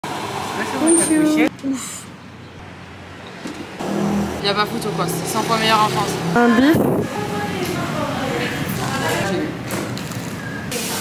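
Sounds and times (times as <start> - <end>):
distant road traffic hum: 0.0 - 10.7
woman speaking: 0.8 - 1.5, 4.4 - 9.5.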